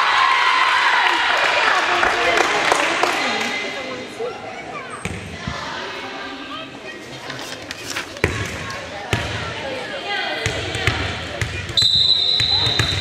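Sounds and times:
background chatter: 1.0 - 13.0.

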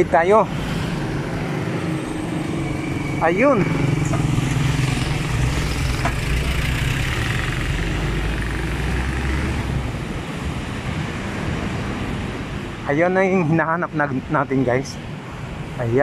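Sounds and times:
truck engine passing: 0.0 - 10.0
street traffic noise: 0.0 - 16.0.

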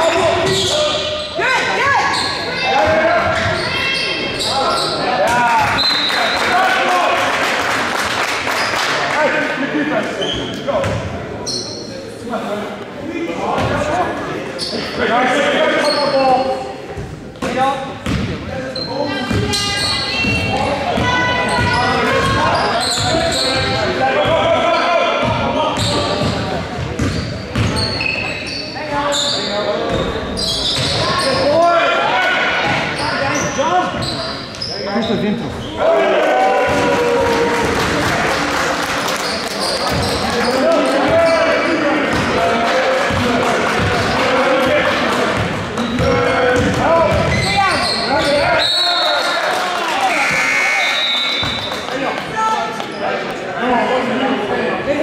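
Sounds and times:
people talking and calling out: 0.0 - 7.5, 8.4 - 55.0
basketball bouncing on gym floor: 17.4 - 18.4, 25.2 - 27.9, 45.3 - 47.7.

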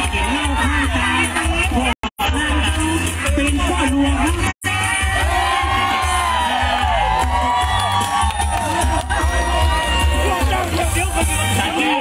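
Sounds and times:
dance music over loudspeakers: 0.0 - 12.0
crowd cheering and whooping: 4.6 - 11.6.

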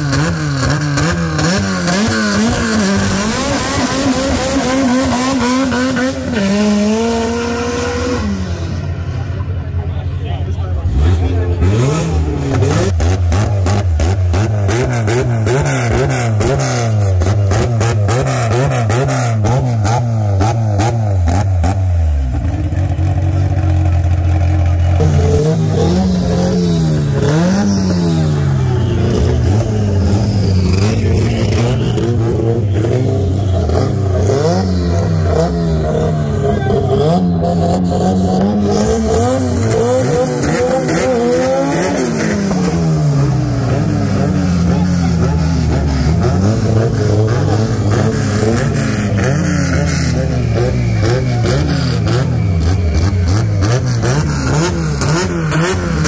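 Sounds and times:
drag car engines revving: 0.0 - 56.0.

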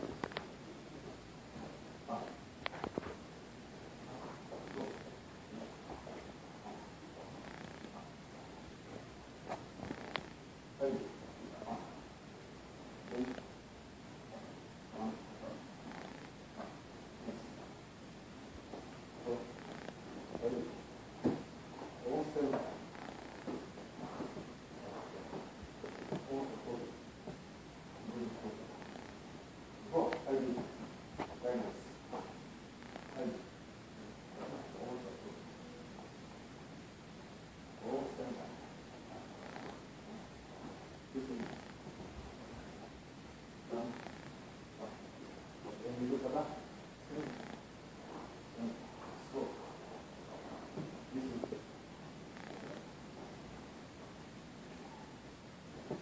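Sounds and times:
faint room noise: 0.0 - 56.0.

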